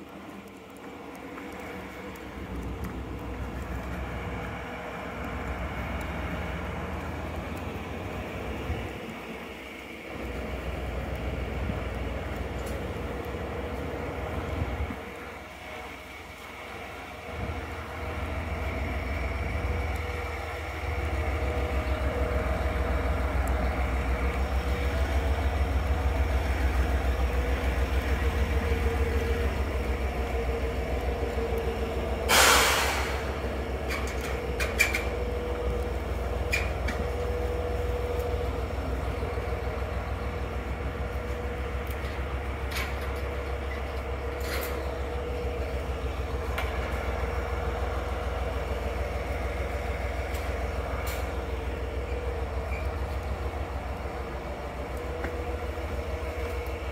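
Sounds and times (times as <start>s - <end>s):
train engine idling: 0.0s - 56.9s
air hiss: 32.2s - 33.6s.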